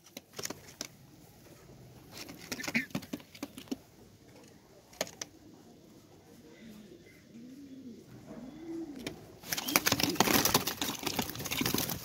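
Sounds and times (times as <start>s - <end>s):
pigeons cooing: 5.4s - 12.0s
wings flapping: 9.4s - 12.0s.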